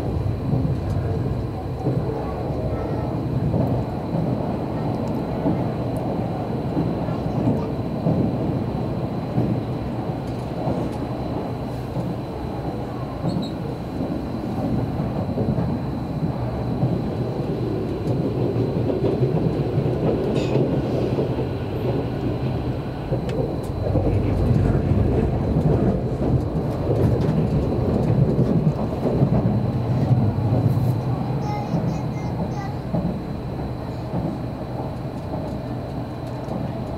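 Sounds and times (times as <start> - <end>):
train wheels rumbling on rail: 0.0 - 36.9.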